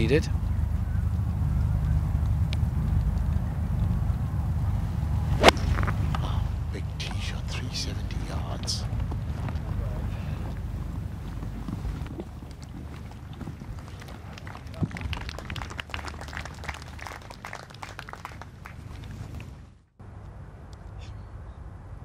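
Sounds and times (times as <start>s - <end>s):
wind noise on microphone: 8.8s - 15.8s
distant clapping: 11.3s - 19.7s.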